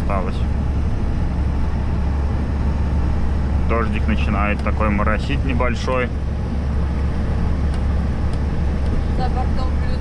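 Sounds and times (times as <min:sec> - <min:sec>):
diesel engine drone: 0:00.0 - 0:10.0
road and tyre noise: 0:00.0 - 0:10.0.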